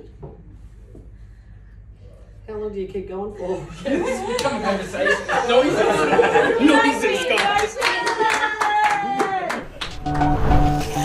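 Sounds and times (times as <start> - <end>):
hand clapping: 7.3 - 10.4.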